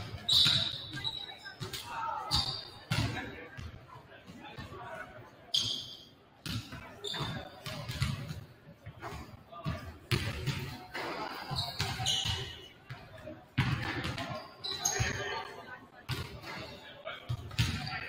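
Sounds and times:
shoe squeaks: 0.1s - 2.9s, 5.5s - 6.1s, 7.0s - 7.7s, 11.3s - 12.8s, 14.2s - 15.3s
basketballs bouncing on hardwood: 6.5s - 8.3s.

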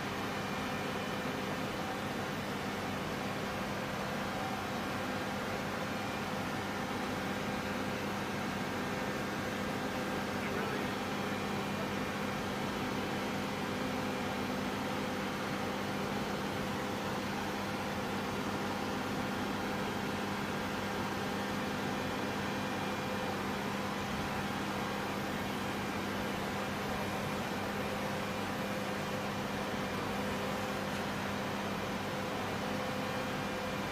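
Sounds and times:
droning machinery hum: 0.0s - 33.9s.

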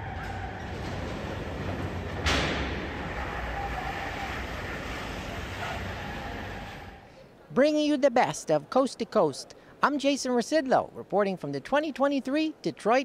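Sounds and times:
engine rush: 0.0s - 7.1s
indoor hall noise: 0.0s - 7.5s.

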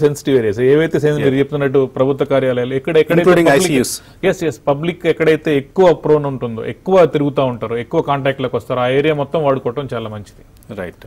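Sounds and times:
man talking: 3.0s - 4.1s.

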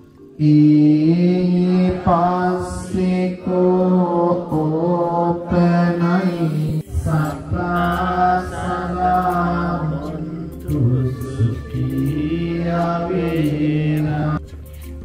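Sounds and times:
person chanting in long held notes: 0.4s - 14.4s.

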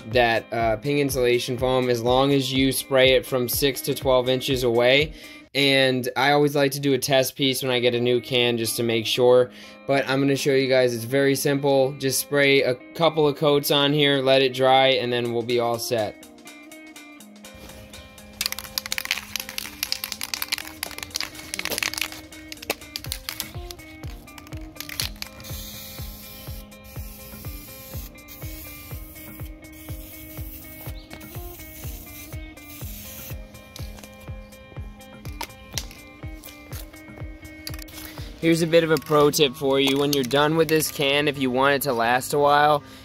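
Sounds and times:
background music with steady beat: 0.0s - 43.0s
aerosol spray can hissing: 17.5s - 34.6s.

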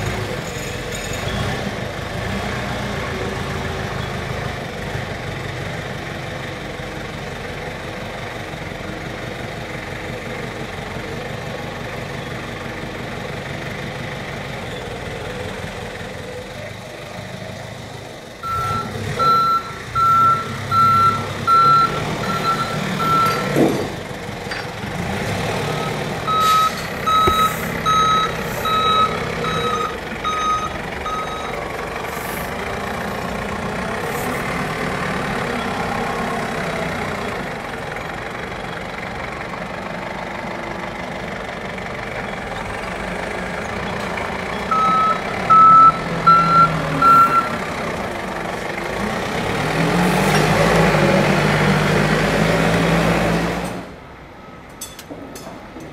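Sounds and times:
forklift engine running: 0.0s - 55.9s
reversing alarm beeping: 18.4s - 23.6s, 25.8s - 31.6s, 44.7s - 47.6s
clunk: 23.1s - 24.9s, 26.3s - 27.7s, 54.7s - 55.9s.

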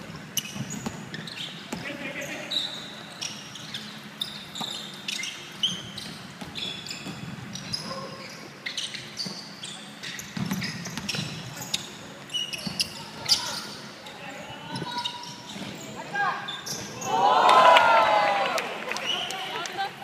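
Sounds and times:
sneakers squeaking on floor: 0.0s - 17.3s
basketball bouncing: 0.1s - 1.1s, 10.2s - 11.4s
players' voices: 11.6s - 20.0s.

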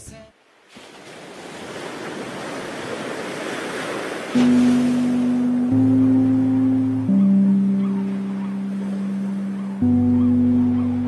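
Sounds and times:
water and wind rushing hiss: 0.4s - 9.9s.

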